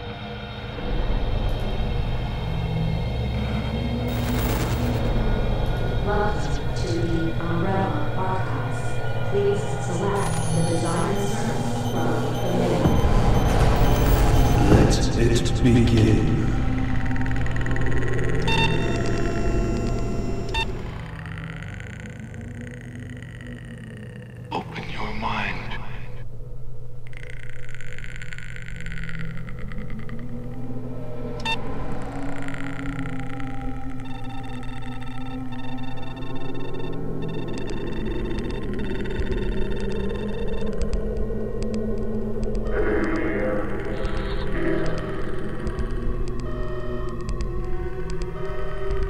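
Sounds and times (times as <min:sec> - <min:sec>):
droning tones: 0:00.0 - 0:49.0
low electronic hum: 0:00.0 - 0:49.0
short electronic beeps: 0:10.1 - 0:15.2.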